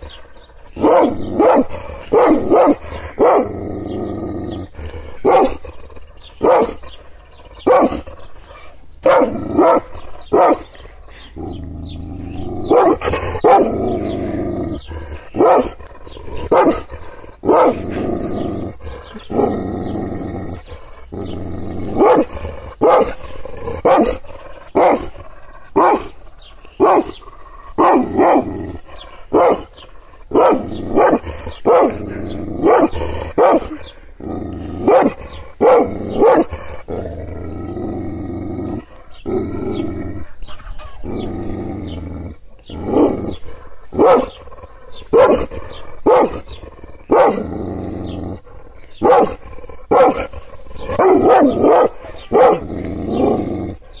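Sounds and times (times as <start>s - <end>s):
dog growling: 0.0s - 54.0s
dog barking deeply: 0.7s - 4.0s, 4.6s - 7.0s, 7.6s - 8.3s, 9.0s - 10.8s, 12.2s - 26.2s, 26.8s - 54.0s.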